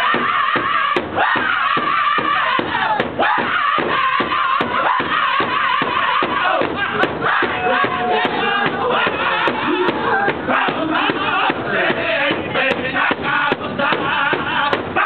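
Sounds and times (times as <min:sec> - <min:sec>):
group singing high-pitched: 0:00.0 - 0:15.0
large hand drum steady beat: 0:00.0 - 0:15.0.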